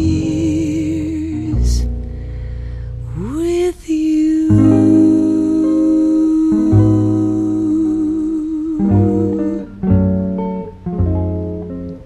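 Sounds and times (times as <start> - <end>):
guitar chords: 0.0 - 12.0
low bass notes: 0.0 - 12.0.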